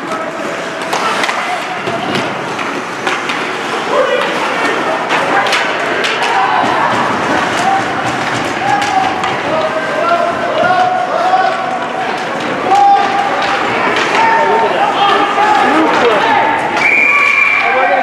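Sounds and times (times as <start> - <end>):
skates on ice: 0.0 - 14.4
hockey sticks and puck clacking: 0.0 - 17.7.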